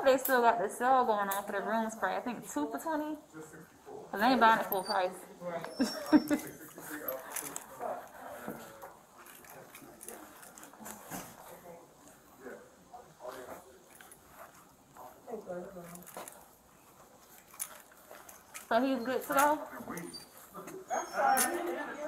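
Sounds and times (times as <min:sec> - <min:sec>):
faint muffled voices: 0:00.0 - 0:22.0.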